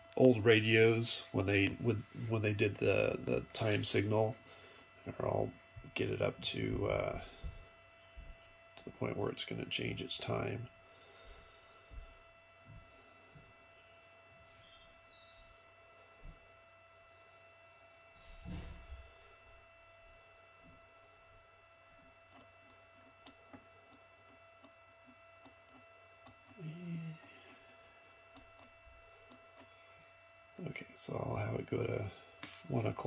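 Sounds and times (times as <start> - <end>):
faint steady whine: 0.0 - 33.0.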